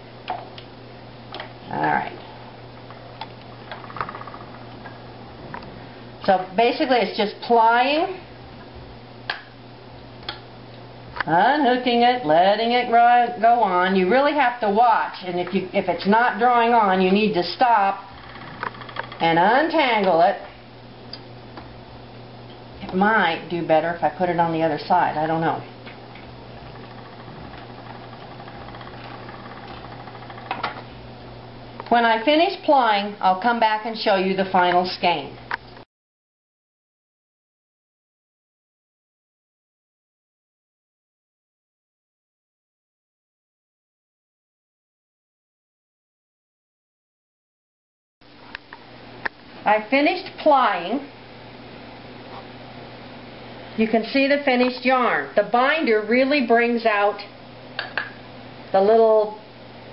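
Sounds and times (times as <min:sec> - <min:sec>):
spinning wheel whirring: 0:15.3 - 0:20.3, 0:23.0 - 0:31.0
spinning wheel clicking and knocking: 0:18.1 - 0:19.4, 0:26.5 - 0:30.9.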